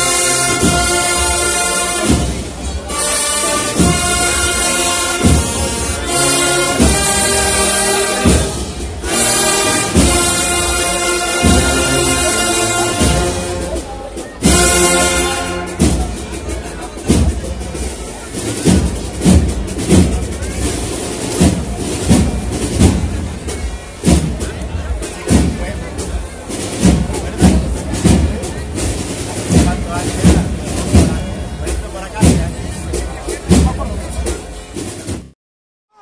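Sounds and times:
procession band drums marching: 0.0s - 35.3s.

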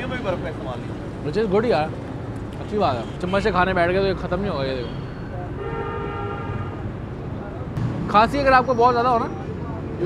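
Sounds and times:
street traffic hum: 0.0s - 10.0s
vehicle horn blast: 5.6s - 6.8s.

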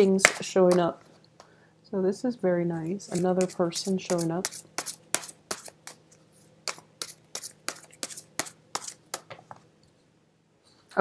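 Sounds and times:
cards being shuffled: 6.7s - 9.4s.

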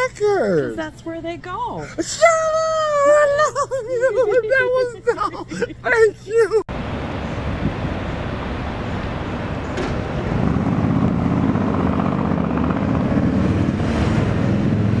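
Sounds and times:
rumble of passing cars: 6.7s - 15.0s.

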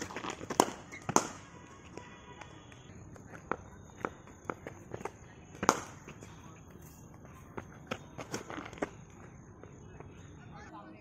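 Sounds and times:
loud sharp crack of cricket ball: 0.0s - 1.5s, 5.6s - 6.0s.

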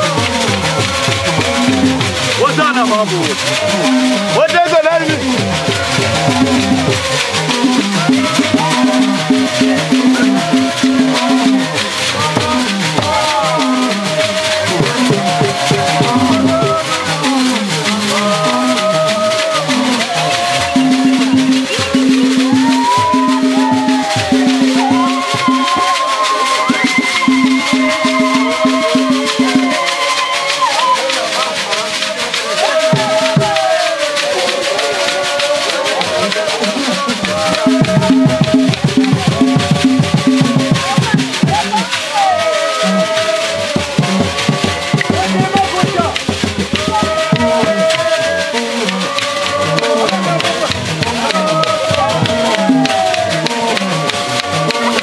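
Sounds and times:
drums beating: 0.0s - 55.0s
group call-and-response chant: 0.0s - 55.0s
shaken rattles: 0.0s - 55.0s
voices holding sung note: 0.0s - 55.0s.

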